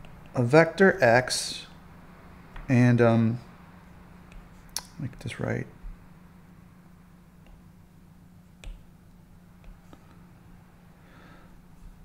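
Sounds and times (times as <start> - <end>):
stylus tapping on glass screen: 8.6 - 8.9.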